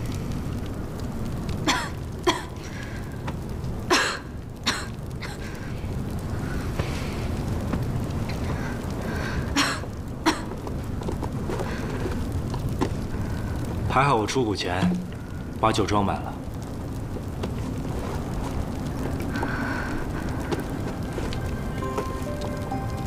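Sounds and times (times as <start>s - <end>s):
campfire crackling and popping: 0.0s - 23.0s.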